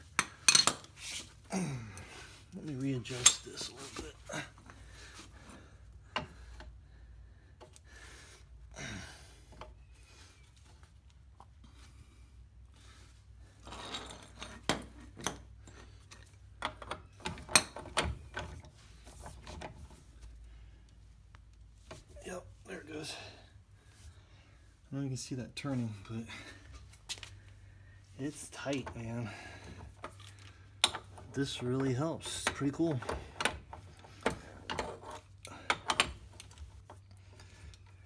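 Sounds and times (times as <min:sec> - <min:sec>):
steel tools clinking and knocking: 0:00.2 - 0:00.9.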